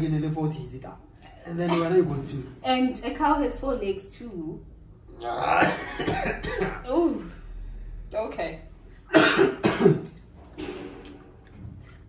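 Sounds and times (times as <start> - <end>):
man coughing: 5.4 - 6.8, 9.1 - 10.2.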